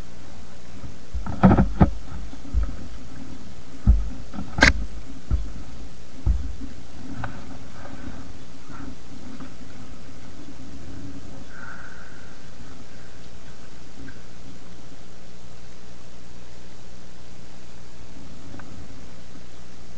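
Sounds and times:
motorcycle thumping over bumps: 1.1 - 2.8, 3.8 - 6.7.

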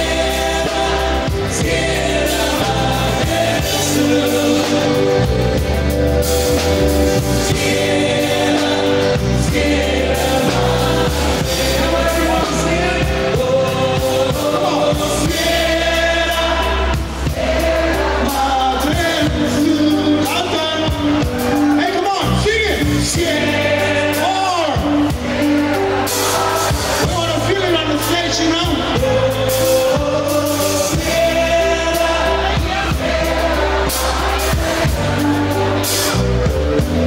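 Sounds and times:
voices singing long held notes: 0.0 - 21.8, 23.0 - 37.0
live band music: 0.0 - 37.0
steady bass: 0.0 - 37.0.

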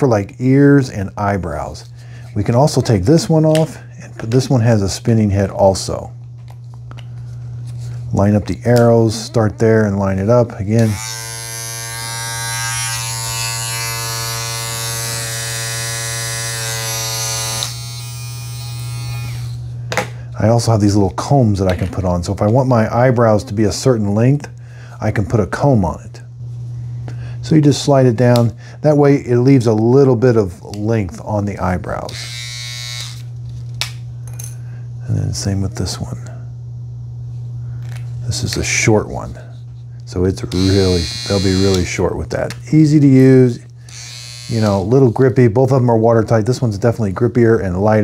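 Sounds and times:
steady low hum: 0.0 - 48.0
trimmer low hum: 8.1 - 19.8, 31.1 - 33.3, 40.1 - 47.9
buzzing motor whine: 10.6 - 19.8, 32.0 - 33.4, 40.4 - 42.2, 43.4 - 45.2.

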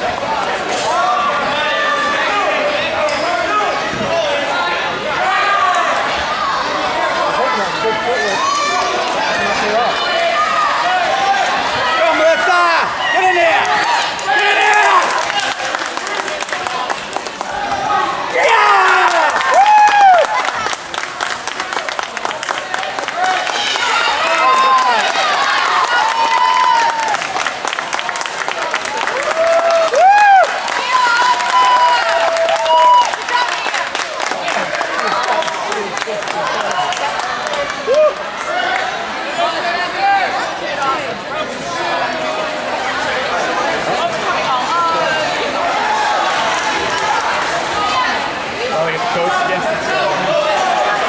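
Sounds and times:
crowd cheering and shouting: 0.0 - 51.0
overlapping chatter: 0.0 - 51.0.

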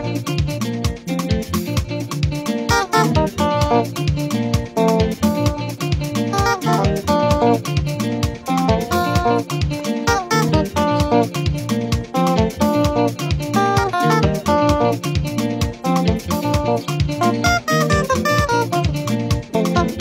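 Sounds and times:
backing beat with bass: 0.0 - 20.0
electric guitar lead melody: 0.0 - 20.0.

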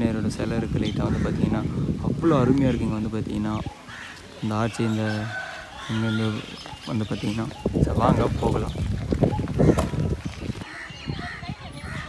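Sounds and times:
rooster crowing: 4.8 - 6.6.

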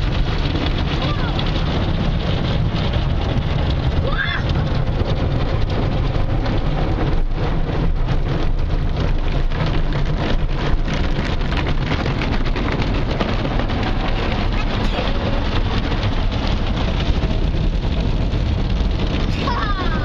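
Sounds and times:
low rumble: 0.0 - 20.0.

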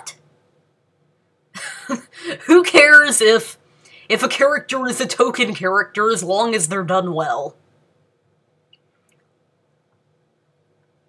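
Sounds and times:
woman laughing breathily: 1.6 - 2.5.

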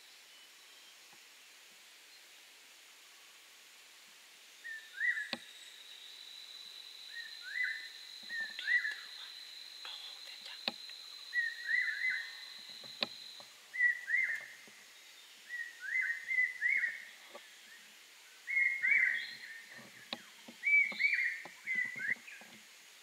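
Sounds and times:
insect whine: 1.8 - 23.0.

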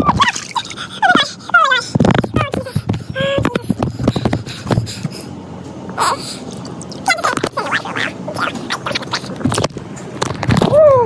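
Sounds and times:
sped-up squeaky voices: 7.0 - 9.7.

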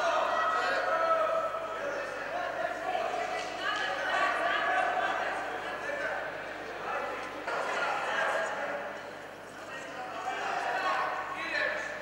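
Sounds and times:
men shouting in a hall: 0.0 - 3.3.

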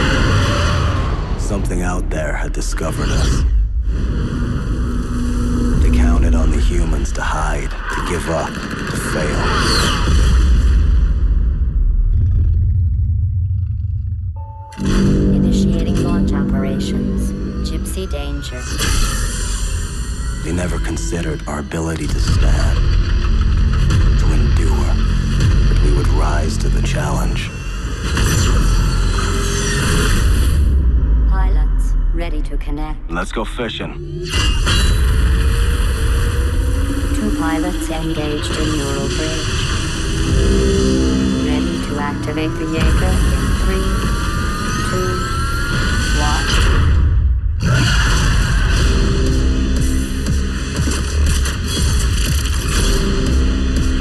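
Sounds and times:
deep loud rumble: 9.0 - 18.3.

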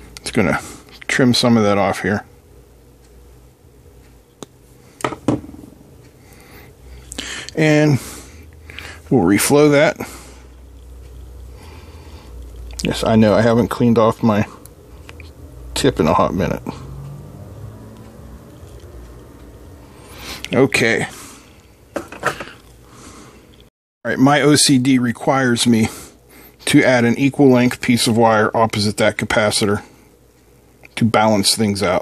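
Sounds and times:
low hum: 2.2 - 21.9.

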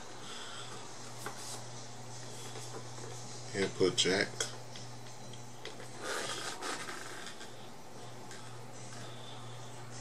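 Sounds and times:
steady low hum: 0.0 - 10.0
hands rubbing on guitar body: 1.2 - 1.7.

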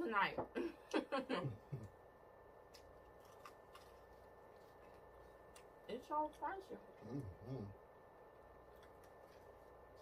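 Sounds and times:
chewing crunchy food: 2.6 - 7.4, 8.4 - 10.0.

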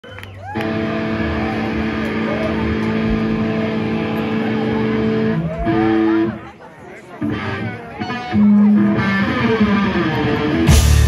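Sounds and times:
crowd shouting: 0.0 - 6.5
distorted electric guitars and bass: 0.4 - 6.4, 7.2 - 11.0.

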